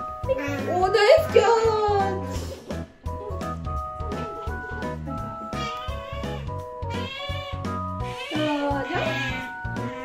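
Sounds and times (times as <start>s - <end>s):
background music: 0.0s - 10.0s
otter squealing: 5.5s - 10.0s.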